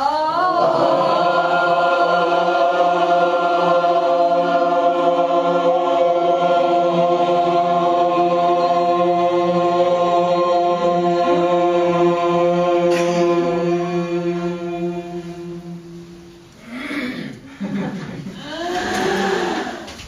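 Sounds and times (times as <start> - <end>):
group chanting held tone: 0.0 - 17.3, 18.4 - 19.9.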